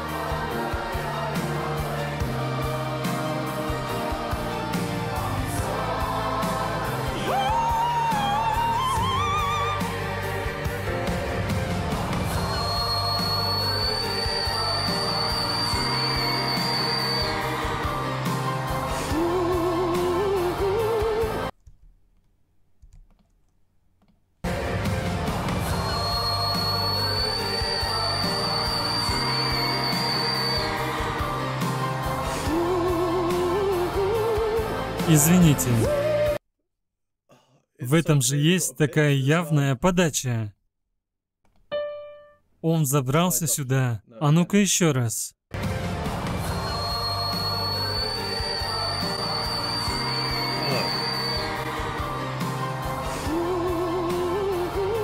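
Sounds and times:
man singing whistle-register note: 12.5 - 17.5, 25.9 - 30.9, 46.6 - 51.6
concert crowd: 45.7 - 54.8.

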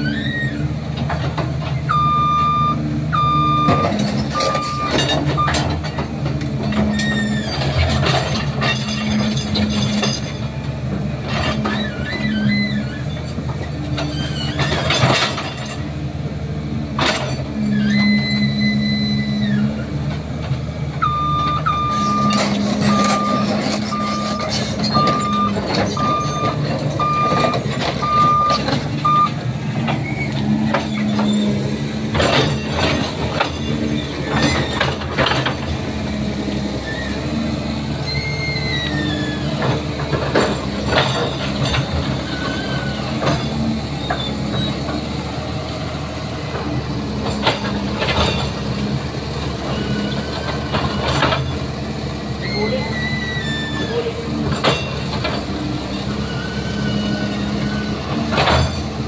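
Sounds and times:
excavator running under load: 0.0 - 59.0
reversing alarm beeping: 1.9 - 5.8, 21.0 - 29.4.

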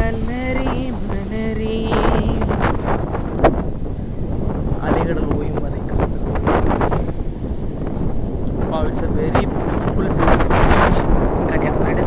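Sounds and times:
waves breaking on shore: 0.0 - 12.0
wind on microphone: 0.0 - 12.0.

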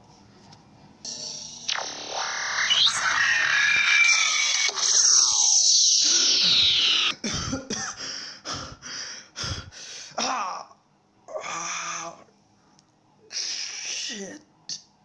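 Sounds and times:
synthetic teleport whoosh: 1.1 - 7.1
man gasping for breath: 7.3 - 10.2.

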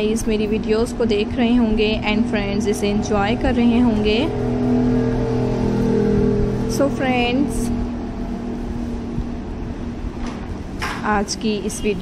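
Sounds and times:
woman speaking: 0.0 - 4.4, 6.7 - 7.8, 11.0 - 12.0
steady low tone drone: 0.0 - 10.9.

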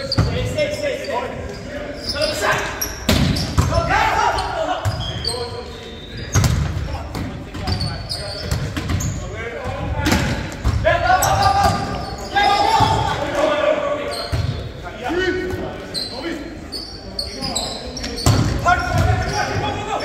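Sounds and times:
players shouting: 1.8 - 5.7, 9.5 - 16.5, 17.3 - 20.0
volleyball slaps: 3.1 - 3.8.

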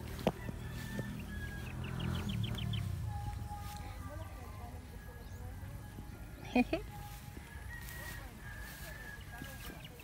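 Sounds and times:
steady low rumble: 0.0 - 7.6.

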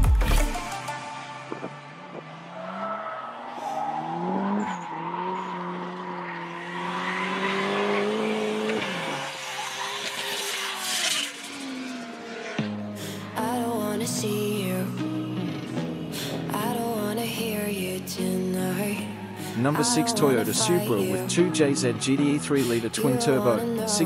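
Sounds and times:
turbocharged engine revving: 2.1 - 14.0, 18.8 - 24.0
tyre squeal: 2.6 - 11.4.

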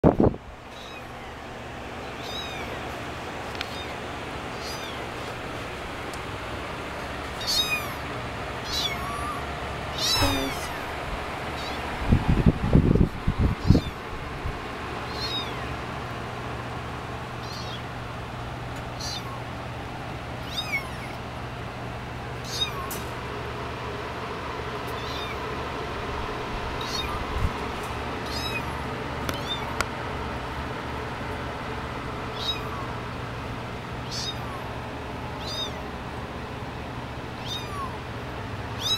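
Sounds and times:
kittens mewing: 0.7 - 1.4, 2.0 - 5.4, 7.3 - 12.0, 13.4 - 14.1, 15.0 - 15.8, 17.4 - 18.0, 18.9 - 19.5, 20.4 - 21.3, 22.4 - 23.2, 24.9 - 25.5, 26.8 - 27.4, 28.2 - 29.8, 32.3 - 33.2, 34.0 - 36.0, 37.3 - 38.2.

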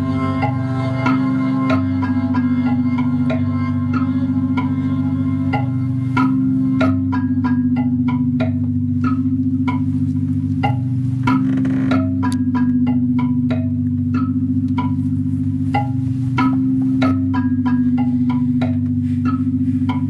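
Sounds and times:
low synthesizer drone: 0.0 - 20.0
struck synth notes ringing: 0.0 - 20.0.

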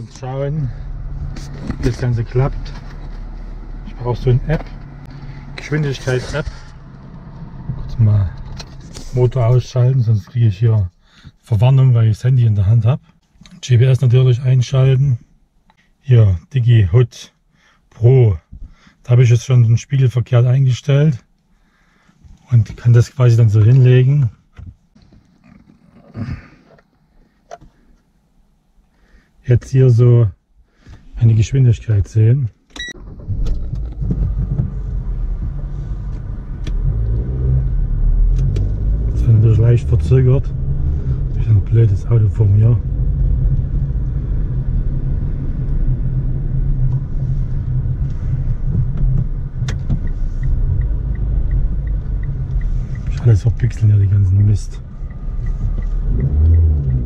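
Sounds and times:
car engine and road rumble: 0.0 - 57.0
breathy vocal sound: 26.1 - 26.8.

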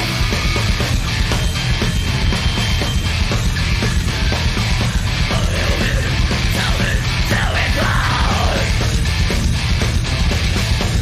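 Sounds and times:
heavy metal band playing: 0.0 - 11.0
yelled vocal: 4.7 - 9.1.

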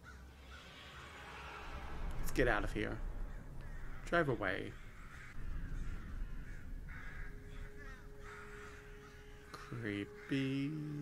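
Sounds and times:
crows cawing: 0.0 - 11.0.

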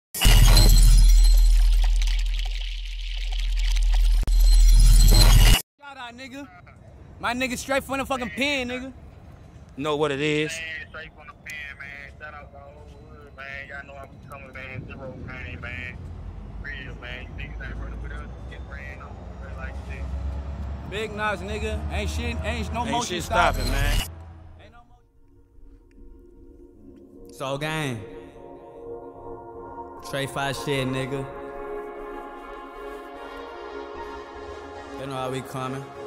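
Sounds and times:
men talking: 5.8 - 9.1, 9.7 - 25.1, 27.3 - 28.5, 30.0 - 31.4, 34.9 - 36.0
deep bass drone: 19.1 - 24.7.

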